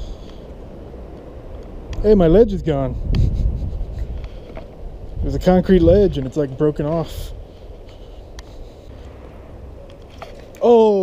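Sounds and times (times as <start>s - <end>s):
low rumble on microphone: 1.4s - 9.9s
clicks and scuffs on rocky ground: 6.0s - 10.8s.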